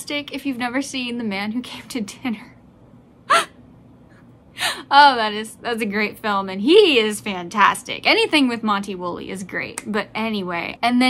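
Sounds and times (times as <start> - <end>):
woman talking: 0.0 - 2.6, 4.7 - 11.0
woman gasping: 3.3 - 3.5, 4.5 - 4.9.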